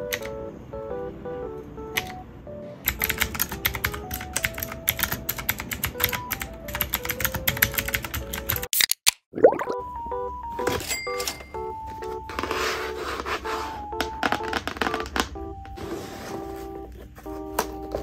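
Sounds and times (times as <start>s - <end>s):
mechanical keyboard typing: 0.0s - 0.4s, 1.9s - 2.2s, 2.8s - 8.7s, 14.0s - 15.6s
background music: 0.0s - 8.7s, 9.5s - 18.0s.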